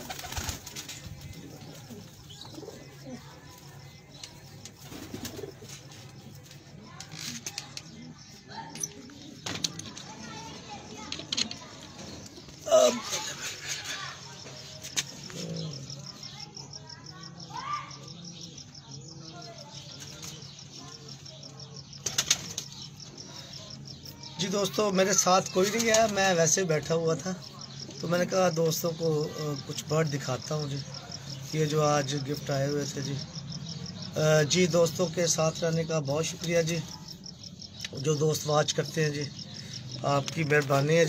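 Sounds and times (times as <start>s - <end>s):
pigeon wings flapping: 0.0s - 1.2s, 22.0s - 22.7s
pigeons cooing: 0.0s - 3.3s, 4.4s - 6.3s, 15.0s - 16.2s.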